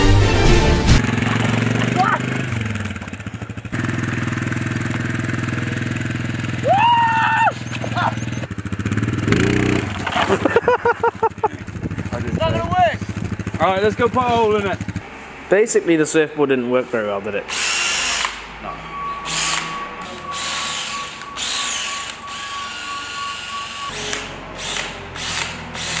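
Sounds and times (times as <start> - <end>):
quad bike engine running: 0.9 - 15.1
person shouting: 1.4 - 2.4, 6.6 - 8.2.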